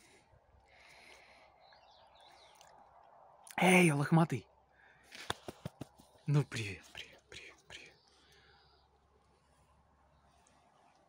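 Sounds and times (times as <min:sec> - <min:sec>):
faint bird chirps: 0:00.0 - 0:03.6, 0:06.0 - 0:11.0.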